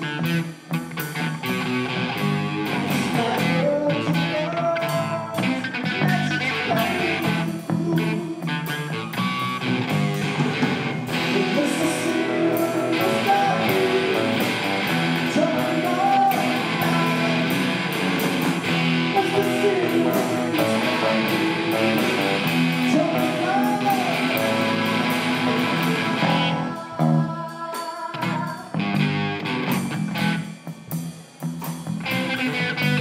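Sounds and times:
drum kit with cymbal hits: 0.0s - 33.0s
electric guitars with bent notes: 0.0s - 33.0s.

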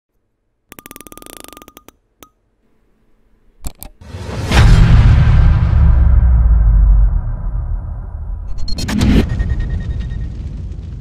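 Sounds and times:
sharp hits: 4.0s - 10.9s
faint beep-like tone: 8.6s - 10.4s.

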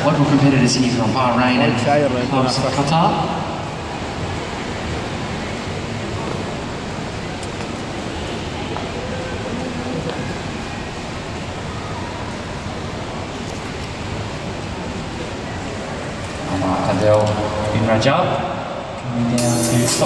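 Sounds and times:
faint voices: 0.0s - 20.0s
noisy indoor swimming arena hubbub: 0.0s - 20.0s.

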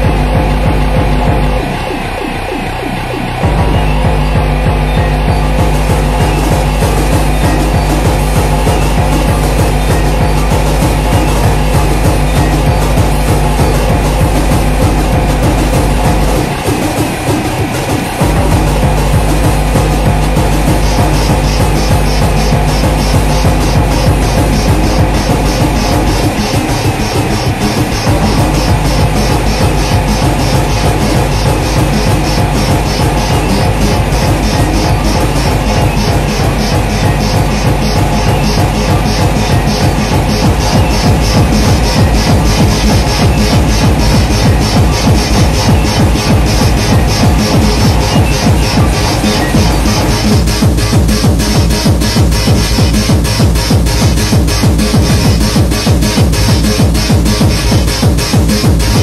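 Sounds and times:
kick drum: 0.0s - 1.7s, 3.4s - 17.4s, 18.2s - 59.0s
hi-hat pattern: 0.0s - 59.0s
synth loops: 0.0s - 59.0s.

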